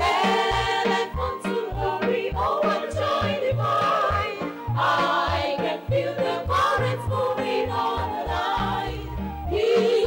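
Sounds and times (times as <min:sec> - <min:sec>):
choir singing a gospel hymn: 0:00.0 - 0:10.0
instrumental accompaniment with bass: 0:00.0 - 0:10.0.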